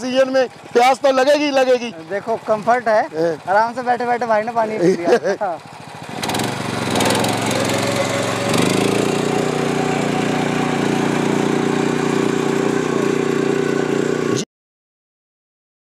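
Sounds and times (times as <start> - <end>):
tiller engine running under load: 0.0 - 14.4.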